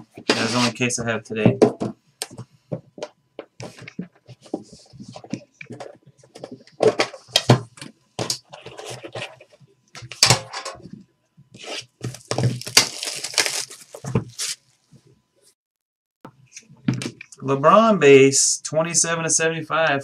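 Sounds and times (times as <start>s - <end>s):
scraping on box: 0.2s - 0.8s
wrapper tearing: 11.6s - 14.6s.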